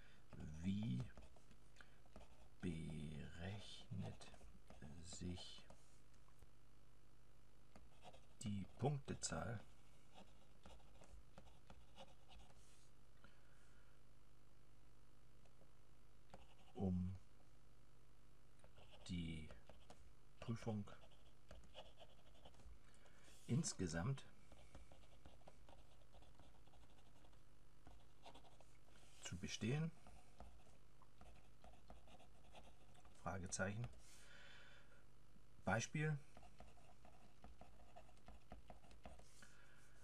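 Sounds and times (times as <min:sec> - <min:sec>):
pen scratching on paper: 0:02.1 - 0:02.6, 0:07.8 - 0:08.8, 0:09.6 - 0:12.7, 0:18.6 - 0:22.7, 0:24.5 - 0:28.7, 0:30.0 - 0:33.2, 0:36.3 - 0:39.4.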